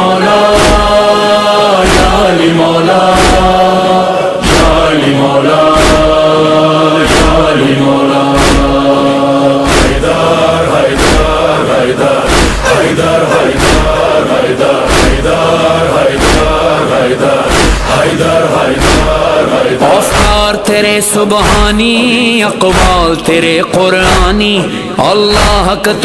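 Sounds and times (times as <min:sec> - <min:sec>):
devotional chanting with music: 0:00.0 - 0:26.0
heavy regular drum beat: 0:01.9 - 0:03.7, 0:04.4 - 0:05.0, 0:05.6 - 0:06.4, 0:07.0 - 0:07.7, 0:08.4 - 0:09.0, 0:09.7 - 0:20.7, 0:21.4 - 0:23.3, 0:24.0 - 0:24.6.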